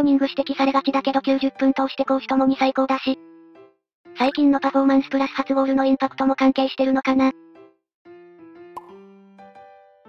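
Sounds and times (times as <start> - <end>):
light keyboard background music: 0.0 - 10.0
short pop sound effect: 8.8 - 9.0.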